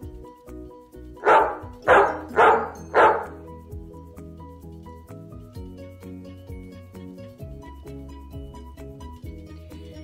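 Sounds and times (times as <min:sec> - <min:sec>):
background music: 0:00.0 - 0:10.0
dog barking: 0:01.2 - 0:03.4.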